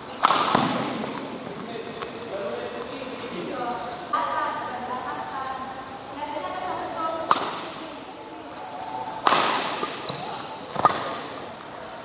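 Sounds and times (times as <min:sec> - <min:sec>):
voices in a hall: 0:00.0 - 0:12.0
racket hitting shuttlecock: 0:00.2 - 0:01.3, 0:07.2 - 0:07.8, 0:09.2 - 0:11.4.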